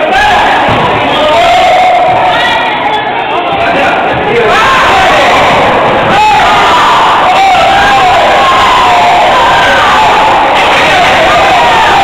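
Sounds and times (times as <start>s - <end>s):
spectators shouting and cheering: 0.0s - 12.0s.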